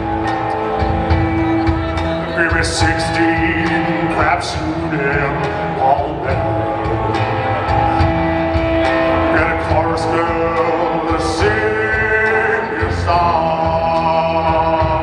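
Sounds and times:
bass: 0.0s - 15.0s
drums: 0.0s - 15.0s
electric guitar long notes: 0.0s - 15.0s.

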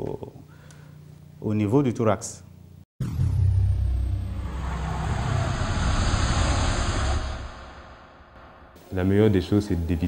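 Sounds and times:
deep rumbling whoosh: 3.0s - 8.9s.

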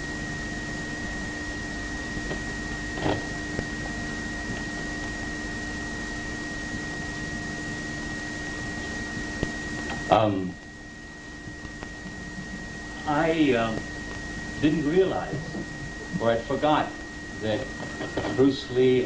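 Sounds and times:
faint high whine: 0.0s - 19.0s
tape hiss and hum: 0.0s - 19.0s.

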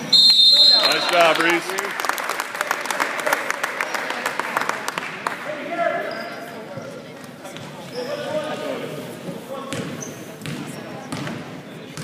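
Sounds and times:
sneaker squeaks: 6.0s - 8.6s, 9.6s - 12.0s.

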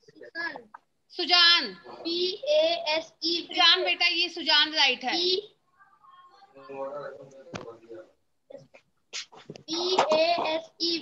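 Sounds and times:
child's voice reading aloud: 0.2s - 7.0s, 9.7s - 11.0s.

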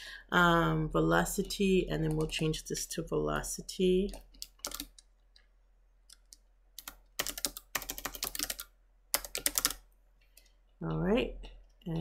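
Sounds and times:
typing on computer keyboard: 2.0s - 2.5s, 4.1s - 5.1s, 6.1s - 9.8s.

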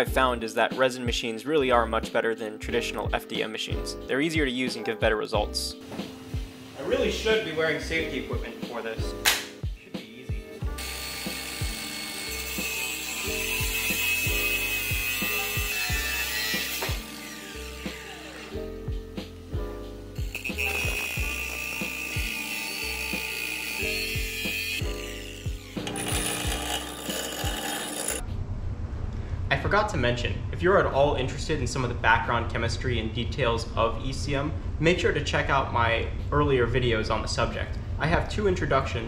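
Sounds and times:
background music with bass: 0.0s - 26.6s
angle grinder cutting steel: 10.7s - 18.8s, 20.1s - 28.2s.

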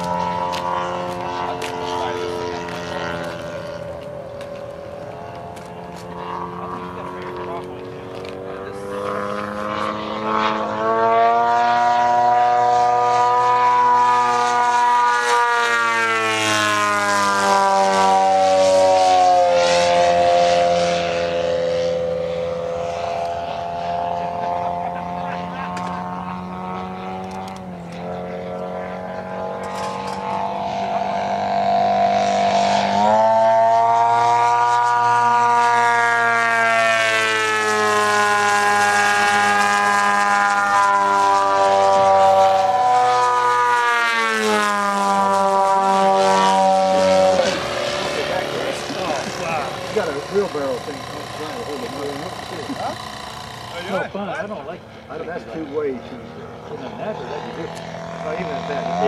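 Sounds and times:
model plane engine in flight: 0.0s - 59.0s.

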